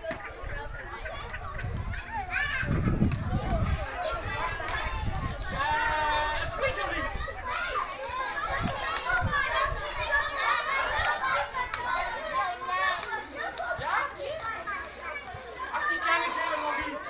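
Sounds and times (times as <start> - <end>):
young children chattering: 0.0 - 17.0.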